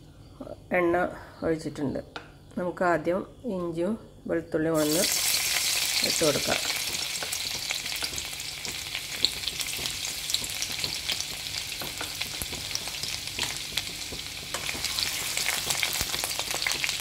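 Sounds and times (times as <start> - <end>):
food sizzling in hot oil: 4.8 - 17.0.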